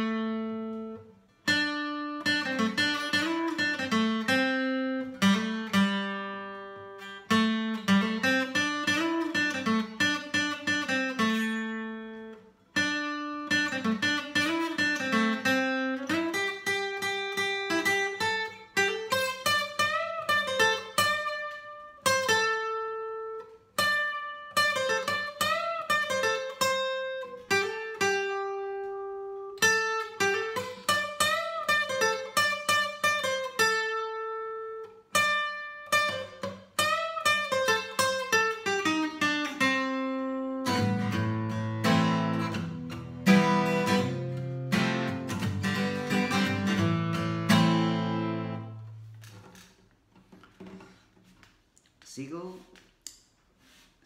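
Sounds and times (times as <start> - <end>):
fingerpicked acoustic guitar: 0.0 - 51.8, 52.6 - 54.0.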